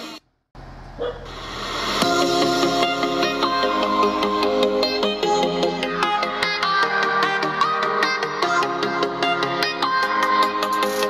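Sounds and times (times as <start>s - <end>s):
music from small speaker: 1.4s - 11.0s.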